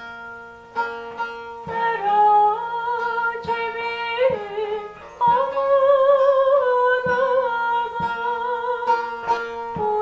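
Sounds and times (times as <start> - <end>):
plucked long-necked lute: 0.0 - 10.0
woman singing folk song: 1.2 - 10.0.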